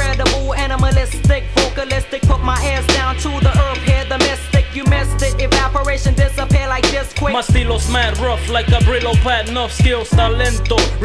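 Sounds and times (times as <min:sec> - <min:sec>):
hip hop drum beat with deep bass: 0:00.0 - 0:11.0
looping pitched sample: 0:00.0 - 0:11.0
rapped vocal: 0:00.0 - 0:11.0.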